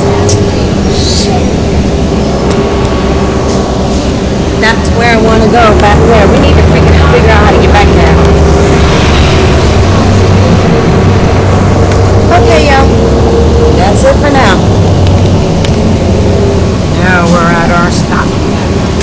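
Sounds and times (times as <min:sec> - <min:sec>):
bus engine and road noise: 0:00.0 - 0:19.0.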